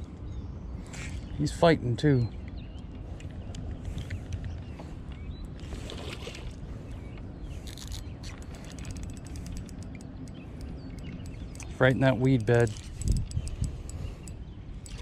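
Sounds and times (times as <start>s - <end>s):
wind rumble: 0.0s - 15.0s
fishing reel winding: 7.6s - 15.0s.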